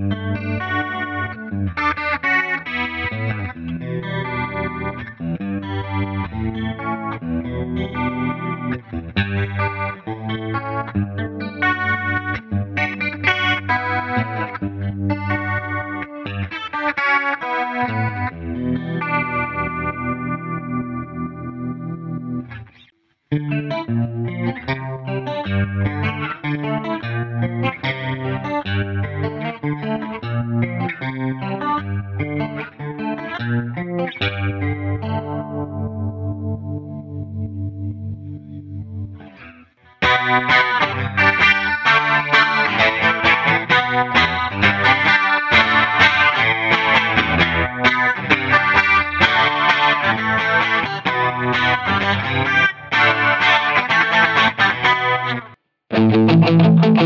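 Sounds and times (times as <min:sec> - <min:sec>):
electric guitar through amp: 0:00.0 - 0:57.0.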